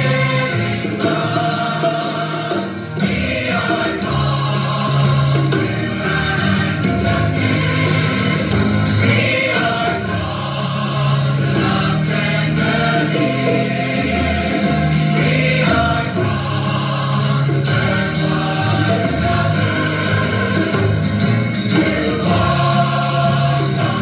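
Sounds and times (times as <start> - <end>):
choir singing church music: 0.0 - 24.0.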